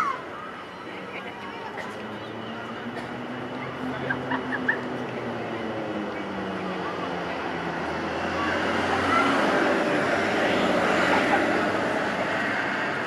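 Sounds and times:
crowd chatter: 0.0 - 13.0
steady rushing noise: 0.0 - 13.0.

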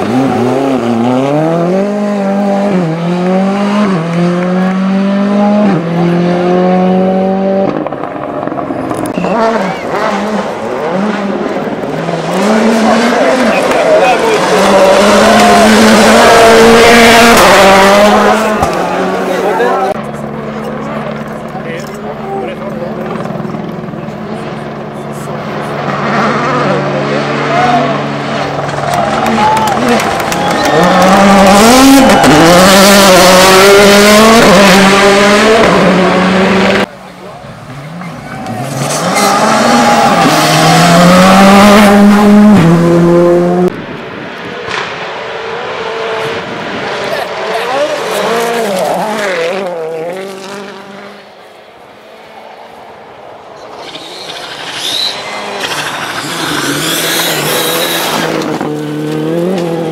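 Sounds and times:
rally cars revving past: 0.0 - 22.0, 22.9 - 36.9, 37.6 - 52.6, 53.6 - 59.9.

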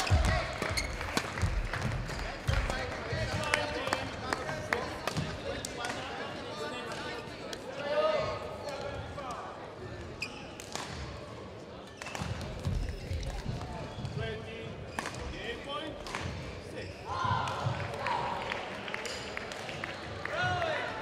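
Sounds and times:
shoes squeaking: 0.0 - 1.2
players' voices: 0.0 - 21.0.

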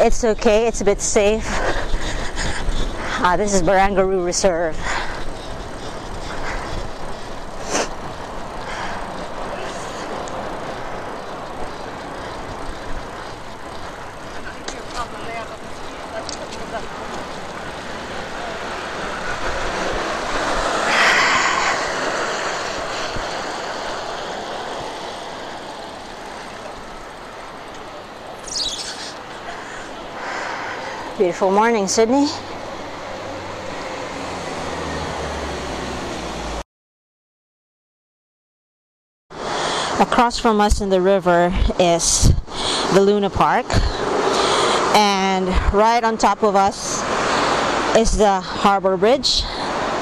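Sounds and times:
bike clicking: 0.0 - 36.3
bicycle tyres on wet road: 0.0 - 36.6, 39.3 - 40.5, 41.2 - 50.0
wind rushing: 16.9 - 27.2.

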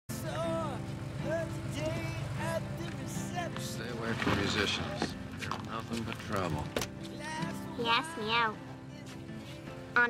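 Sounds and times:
car engine running: 0.1 - 8.5
voices talking: 1.7 - 8.7.

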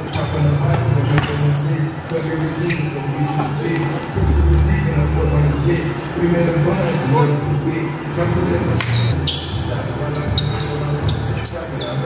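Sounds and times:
sneaker squeaks on floor: 0.0 - 1.8, 2.6 - 3.3, 9.1 - 12.0
background music: 1.9 - 11.8.

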